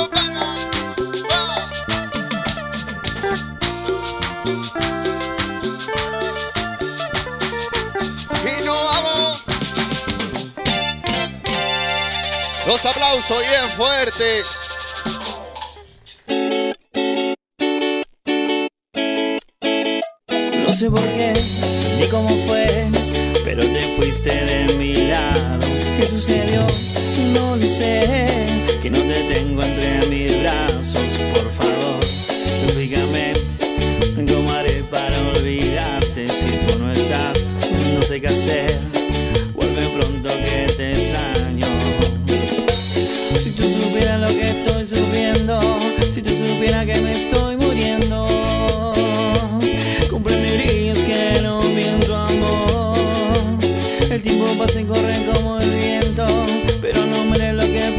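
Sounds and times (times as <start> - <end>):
person singing: 0.0 - 9.5, 20.5 - 42.2, 43.2 - 57.9
latin dance band playing: 0.0 - 16.2, 20.3 - 57.9
clipped guitar chords: 0.0 - 57.9.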